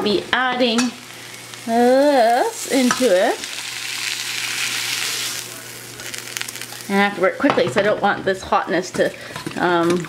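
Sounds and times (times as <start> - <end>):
vegetables sizzling: 0.0 - 10.0.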